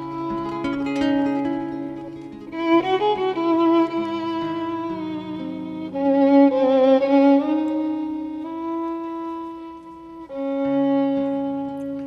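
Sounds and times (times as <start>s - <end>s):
solo violin slow melody: 0.0s - 12.0s
sparse guitar accompaniment: 0.0s - 12.0s.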